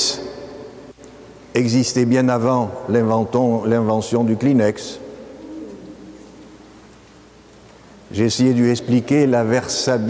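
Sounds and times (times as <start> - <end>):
man's voice reverberating: 0.0 - 0.6, 1.2 - 6.7, 8.0 - 10.0.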